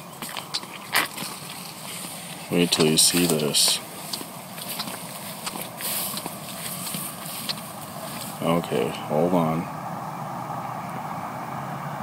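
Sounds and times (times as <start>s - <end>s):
footsteps on dirt trail: 0.0s - 9.0s
grass rustling: 0.0s - 10.1s.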